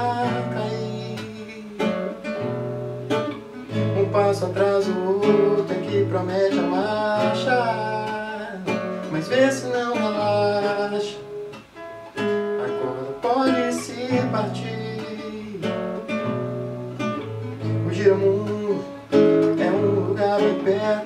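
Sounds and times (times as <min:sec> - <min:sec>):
man singing: 0:00.0 - 0:02.5, 0:03.7 - 0:11.6, 0:12.2 - 0:16.4, 0:17.6 - 0:21.0
classical guitar strummed and picked: 0:00.0 - 0:21.0.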